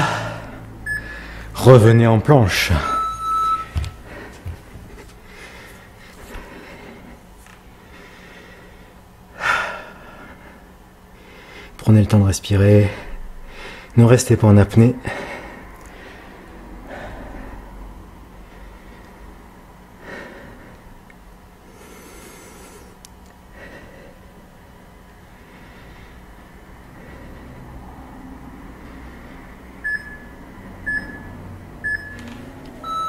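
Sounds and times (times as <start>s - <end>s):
person breathing: 0.0s - 1.6s, 3.7s - 7.2s, 7.8s - 11.8s, 13.0s - 14.0s, 15.0s - 19.3s, 20.0s - 20.9s, 21.6s - 24.4s, 25.3s - 29.6s
short electronic beeps: 2.8s - 3.8s, 29.8s - 30.3s, 30.9s - 33.0s.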